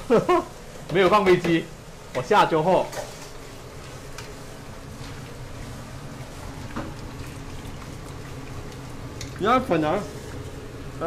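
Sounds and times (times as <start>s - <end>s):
food deep-frying in oil: 0.0s - 11.0s
ladle stirring in oil: 2.1s - 11.0s.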